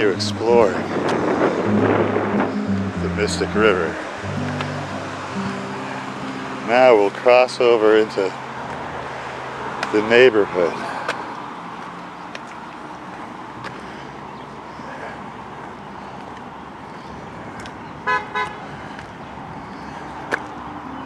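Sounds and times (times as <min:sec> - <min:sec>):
hiss of passing traffic: 0:00.0 - 0:21.0
car horn toots: 0:18.0 - 0:18.6.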